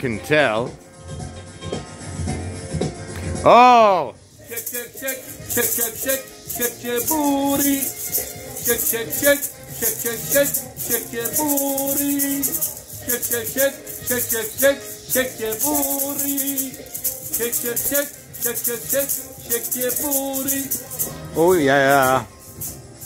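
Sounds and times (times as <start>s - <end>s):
disco song from tv: 0.0s - 23.0s
maracas shaken: 4.3s - 23.0s.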